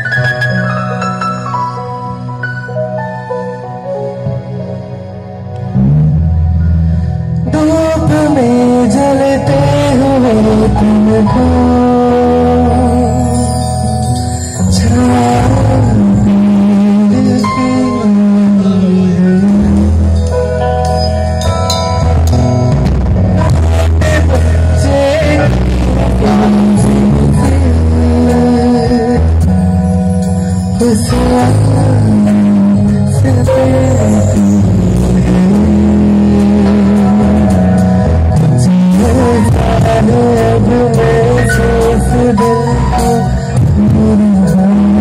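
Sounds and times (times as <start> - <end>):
live rock band playing: 0.0 - 45.0
person singing: 7.4 - 20.5, 23.4 - 29.7, 30.5 - 45.0.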